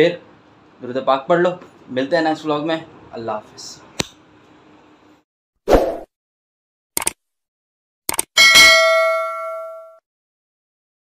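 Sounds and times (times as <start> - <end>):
sharp click: 7.0 - 7.2, 8.1 - 8.3.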